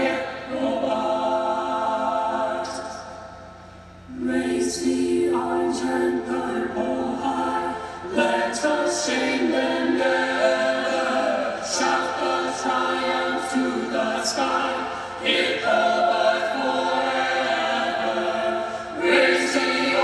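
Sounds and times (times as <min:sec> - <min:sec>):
choir singing unaccompanied: 0:00.0 - 0:03.4, 0:04.1 - 0:20.0.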